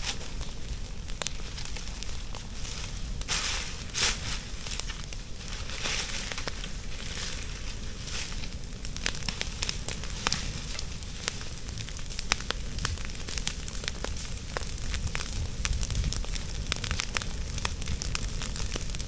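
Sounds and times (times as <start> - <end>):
leaves burning with crackles: 0.0 - 19.0
torch swishing through leaves: 2.6 - 8.6.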